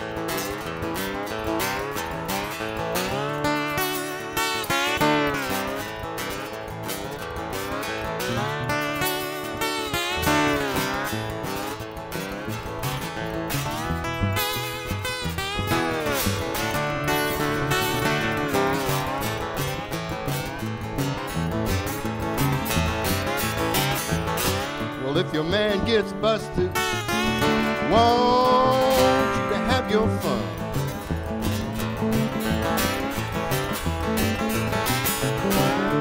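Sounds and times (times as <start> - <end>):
slide guitar lines: 0.0 - 36.0
strummed guitar: 0.0 - 36.0.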